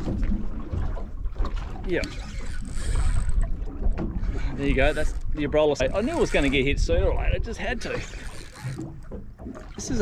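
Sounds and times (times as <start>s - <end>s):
wind rumble on microphone: 0.0s - 9.0s.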